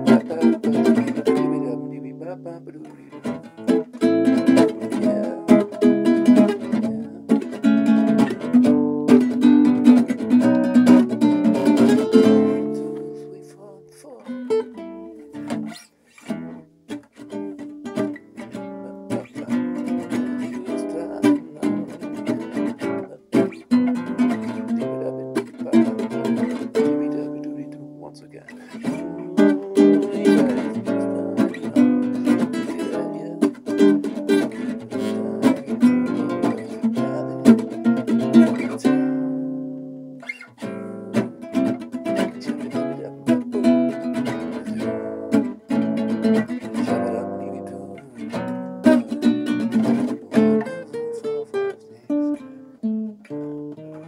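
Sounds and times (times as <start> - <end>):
fingerstyle classical guitar blues: 0.0 - 54.0.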